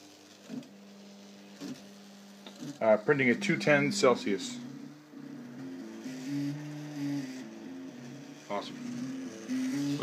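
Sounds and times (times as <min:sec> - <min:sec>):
printer stepper motors whining: 0:00.0 - 0:10.0.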